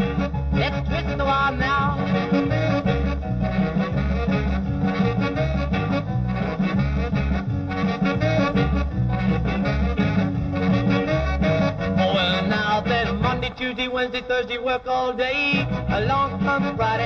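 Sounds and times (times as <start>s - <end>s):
pulsing bass line: 0.0s - 13.7s, 15.5s - 17.0s
rock and roll band playing: 0.0s - 13.8s, 14.9s - 17.0s
horns: 0.0s - 14.2s, 15.4s - 17.0s.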